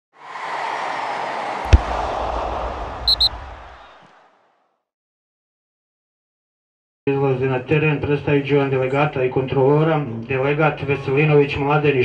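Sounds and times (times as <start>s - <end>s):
quick high pings: 3.1s - 3.3s.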